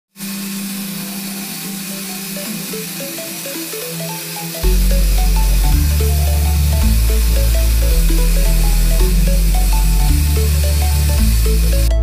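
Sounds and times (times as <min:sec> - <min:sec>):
electric polishers humming: 0:00.1 - 0:12.0.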